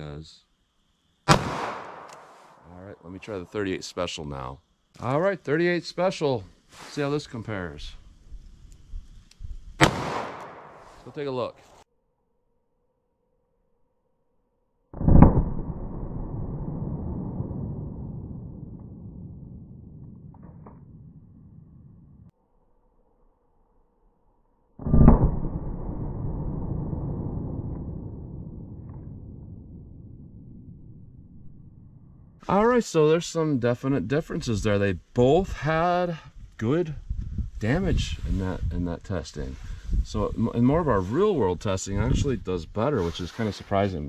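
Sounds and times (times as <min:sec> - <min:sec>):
revolver shot with echo: 0:01.3 - 0:02.5, 0:09.8 - 0:10.9
gunshot boom: 0:01.3 - 0:02.6, 0:09.8 - 0:11.0, 0:15.0 - 0:21.1, 0:24.8 - 0:30.6
low rumble: 0:15.0 - 0:22.3, 0:24.8 - 0:32.7.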